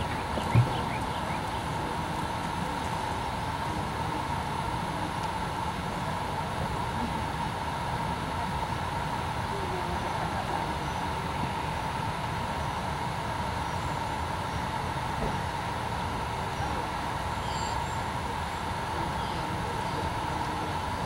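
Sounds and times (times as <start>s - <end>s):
background rumble and hiss: 0.0s - 21.0s
mid-pitched hum: 0.0s - 21.0s.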